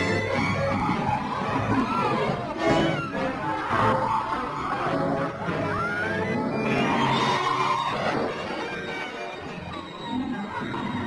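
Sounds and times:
music: 0.0s - 11.0s
squealing gliding sound effect: 0.0s - 11.0s.

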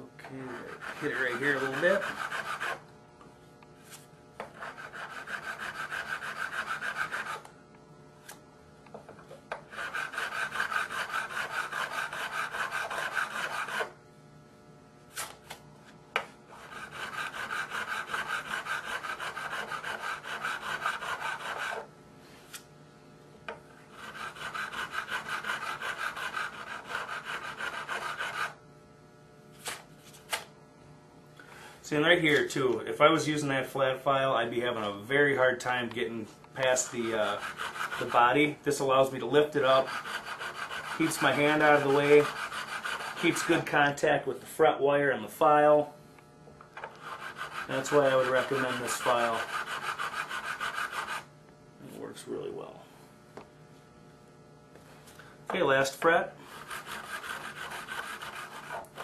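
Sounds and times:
file rasping on metal fret: 0.4s - 2.8s, 4.4s - 7.5s, 9.6s - 14.0s, 16.5s - 21.9s, 23.9s - 28.6s, 36.7s - 38.5s, 39.2s - 43.8s, 46.9s - 51.3s, 56.4s - 59.0s.

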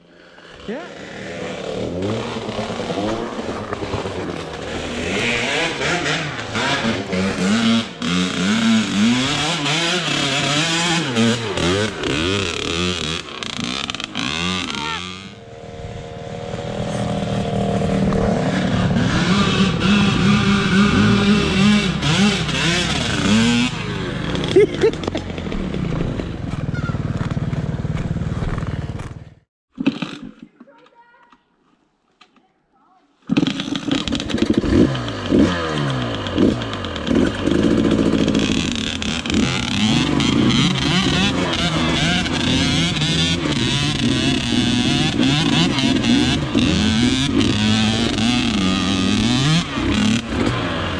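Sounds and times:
dirt bike engines revving: 0.0s - 29.4s, 33.2s - 50.9s.

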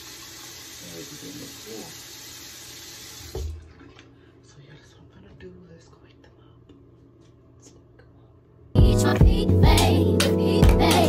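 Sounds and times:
tap water running into sink: 0.0s - 4.1s.

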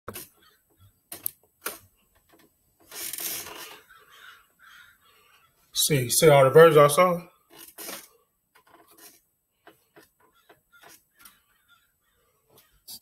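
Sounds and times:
crows cawing: 3.5s - 5.7s, 10.2s - 12.9s.

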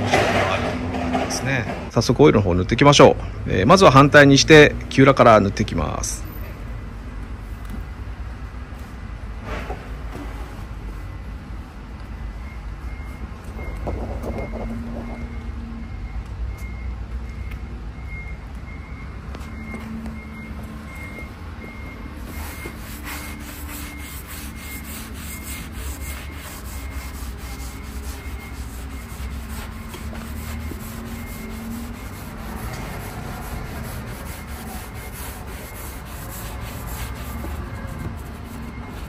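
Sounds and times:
faint repeating beep: 12.3s - 33.6s, 38.6s - 39.0s.

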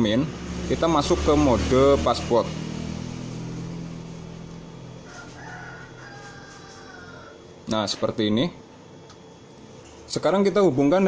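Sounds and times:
low engine hum: 0.0s - 6.0s.

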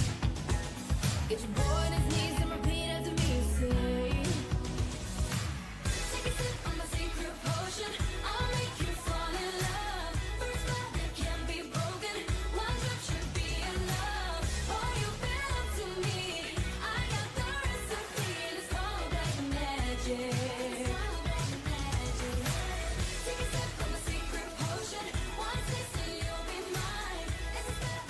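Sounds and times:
bass-heavy beat: 0.0s - 18.1s, 18.7s - 20.2s, 20.9s - 28.0s
person singing: 1.3s - 28.0s.

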